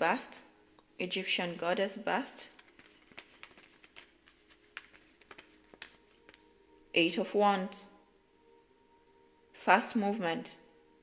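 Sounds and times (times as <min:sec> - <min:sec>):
cards clicking and flicking: 0:02.6 - 0:06.5.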